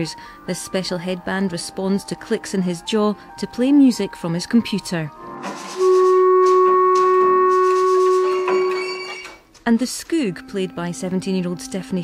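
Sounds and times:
woodwind-like electronic notes: 0:05.3 - 0:09.4.

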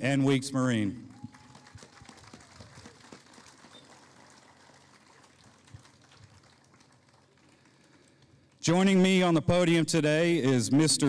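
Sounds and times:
faint crowd applause: 0:00.7 - 0:08.6.

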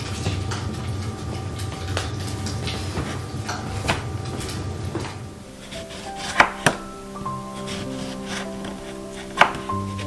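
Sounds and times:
knife slicing lemon: 0:05.6 - 0:10.0.

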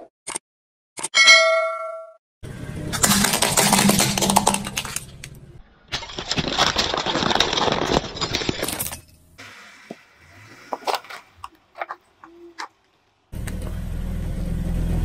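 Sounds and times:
bright bell-like ding: 0:01.2 - 0:02.2
car tyre crushing objects: 0:02.9 - 0:12.0.

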